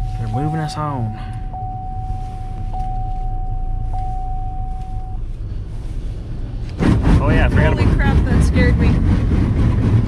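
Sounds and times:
car wash machinery rumble: 0:05.2 - 0:10.0.

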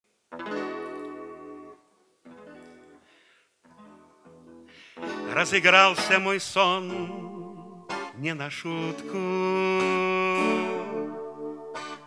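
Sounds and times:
nylon-string guitar chords: 0:00.3 - 0:12.0.

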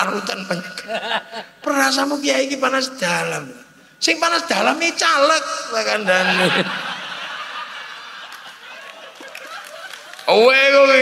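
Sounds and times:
man speaking: 0:01.6 - 0:06.8
audience laughing: 0:06.0 - 0:10.4.

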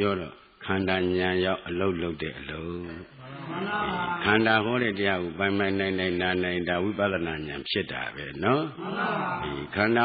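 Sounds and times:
monk giving a sermon: 0:00.0 - 0:10.0.

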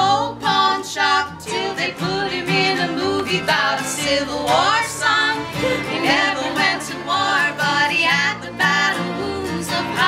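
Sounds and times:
acoustic guitar: 0:00.0 - 0:10.0
mandolin: 0:00.0 - 0:10.0
upright bass: 0:00.0 - 0:10.0
woman singing: 0:00.0 - 0:10.0.

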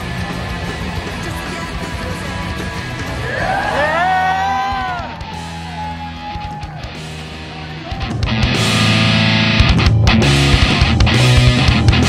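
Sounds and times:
rock band playing: 0:00.0 - 0:12.0
bending electric guitar line: 0:06.2 - 0:12.0.

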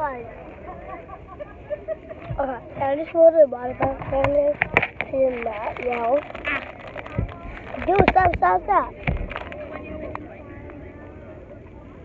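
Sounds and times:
child speaking: 0:02.4 - 0:06.2, 0:07.8 - 0:09.0.

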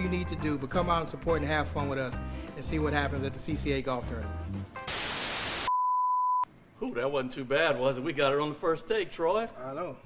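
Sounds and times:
television static hiss: 0:04.9 - 0:05.7.

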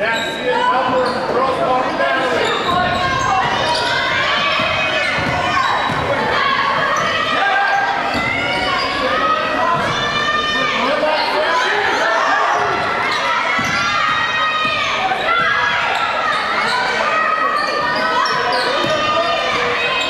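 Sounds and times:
voices in gymnasium: 0:00.0 - 0:20.0.

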